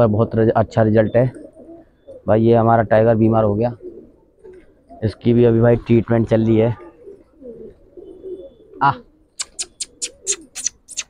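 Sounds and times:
pigeons cooing softly: 0.0 - 11.0
short sharp hissy clicks: 9.4 - 11.0.

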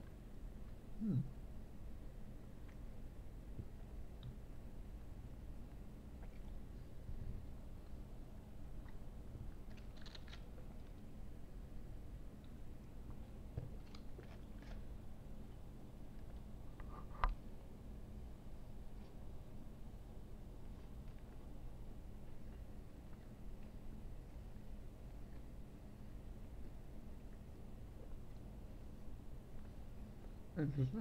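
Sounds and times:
person chewing food: 12.4 - 15.0.

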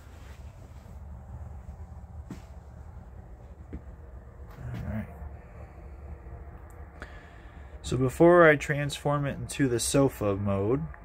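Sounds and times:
steady low rumble: 0.0 - 11.0
man speaking: 4.6 - 5.2, 7.8 - 11.0.

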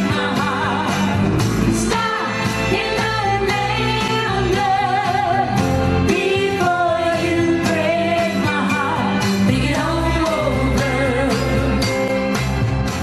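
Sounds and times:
woman singing: 0.0 - 1.2, 1.8 - 11.9
band accompaniment: 0.0 - 13.0
steady drum beat: 0.0 - 13.0.

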